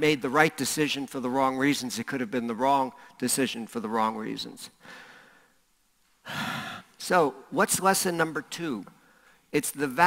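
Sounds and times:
man speaking: 0:00.0 - 0:04.8, 0:06.8 - 0:10.0
man breathing into microphone: 0:04.8 - 0:05.6.

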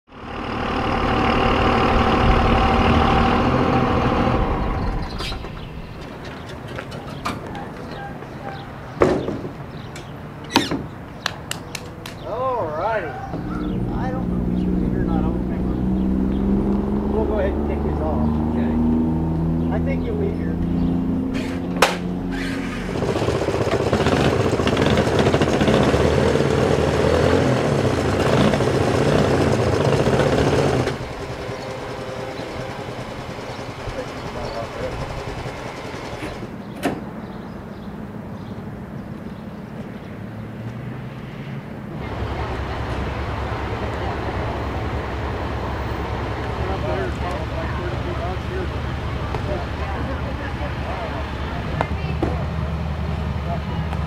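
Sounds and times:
vehicle engines running: 0:00.1 - 0:54.0
indistinct voices: 0:12.2 - 0:21.6, 0:29.3 - 0:36.5, 0:42.0 - 0:54.0.

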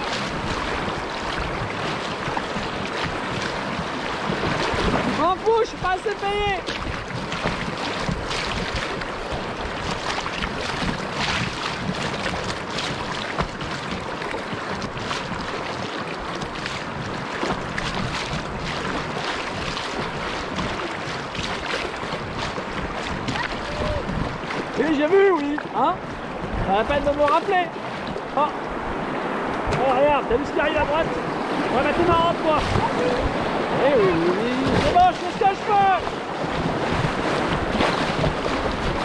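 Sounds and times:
wind on microphone: 0:00.0 - 0:24.9, 0:26.0 - 0:27.2, 0:27.8 - 0:39.0
river water splashing on kayak hull: 0:00.0 - 0:39.0.

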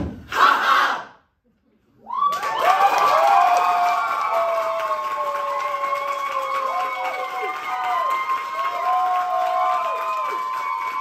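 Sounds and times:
group vocal cry: 0:00.3 - 0:01.1
audience cheering and applause: 0:02.0 - 0:11.0.

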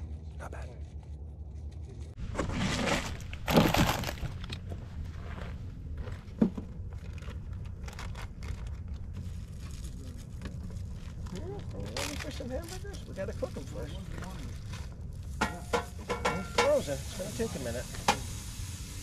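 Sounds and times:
plastic packaging crinkling: 0:02.5 - 0:04.4, 0:07.0 - 0:13.8.

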